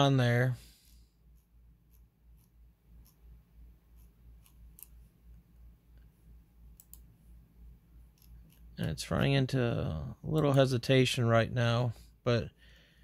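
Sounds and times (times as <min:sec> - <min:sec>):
low steady hum: 0:00.0 - 0:13.0
faint computer mouse clicks: 0:03.9 - 0:05.0, 0:06.7 - 0:07.1.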